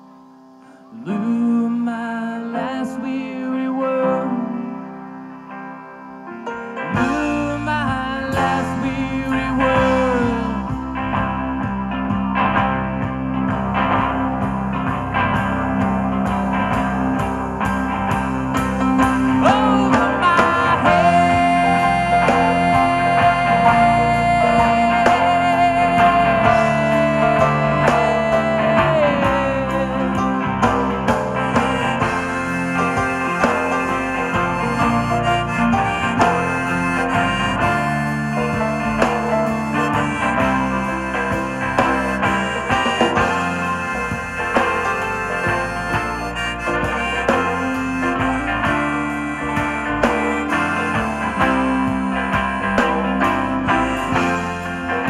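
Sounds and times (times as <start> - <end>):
harmonica lead line: 0.0 - 55.0
live rock band playing: 0.0 - 55.0.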